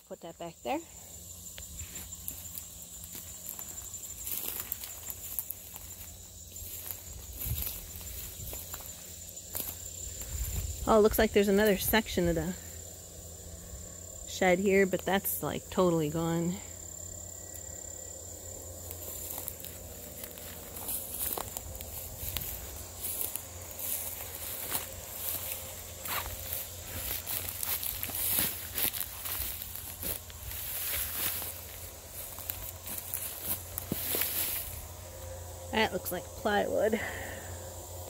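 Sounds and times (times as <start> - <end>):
footsteps through dry grass: 1.0 - 11.0, 17.2 - 35.3.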